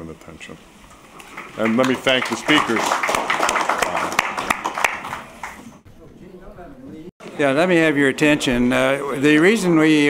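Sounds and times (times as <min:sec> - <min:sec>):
audience applauding: 0:01.2 - 0:05.8.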